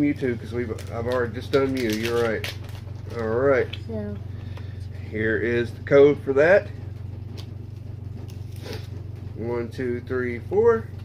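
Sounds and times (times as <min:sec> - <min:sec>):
low hum: 0:00.0 - 0:11.0
card rustle: 0:00.6 - 0:03.7
trading cards handled: 0:00.6 - 0:04.7.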